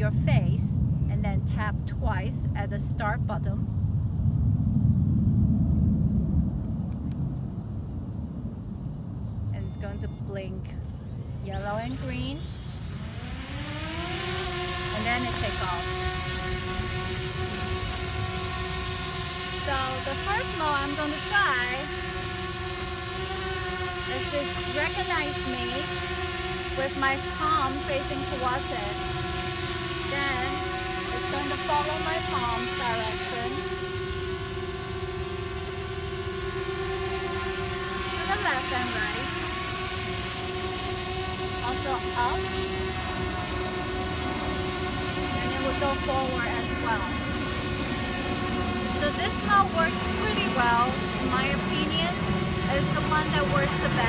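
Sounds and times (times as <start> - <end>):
low rumble: 0.0 - 13.1
quadcopter propellers whining: 9.6 - 54.0.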